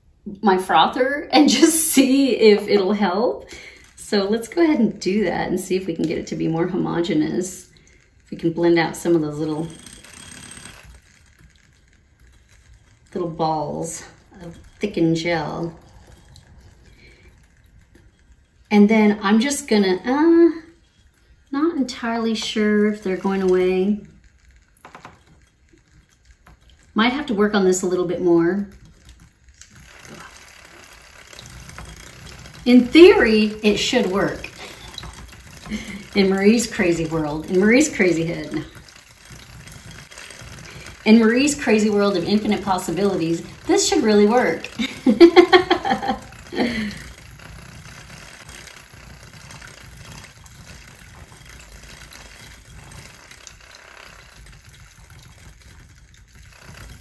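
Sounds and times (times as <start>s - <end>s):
milk frother whirring: 0.0s - 57.0s.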